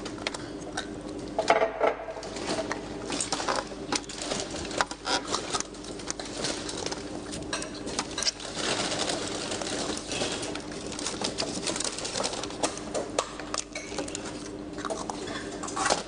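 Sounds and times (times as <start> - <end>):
paper bags rustling: 2.2 - 13.2.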